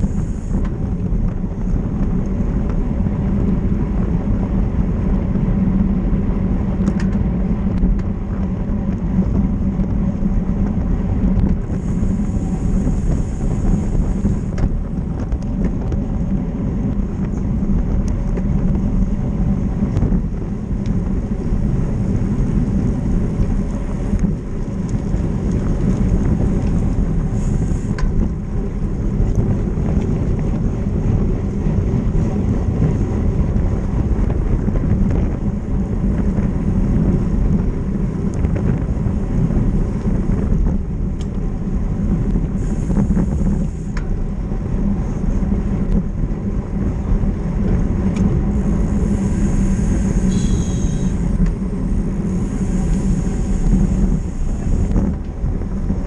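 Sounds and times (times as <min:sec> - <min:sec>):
road and tyre noise: 0:00.0 - 0:56.0
wind rushing over microphone: 0:00.0 - 0:56.0
thin high hiss: 0:48.7 - 0:51.4.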